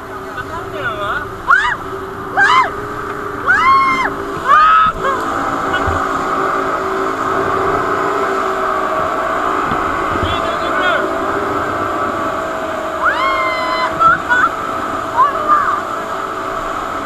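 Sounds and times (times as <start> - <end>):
motorboat engine droning: 0.0 - 17.0
wind on microphone: 0.0 - 17.0.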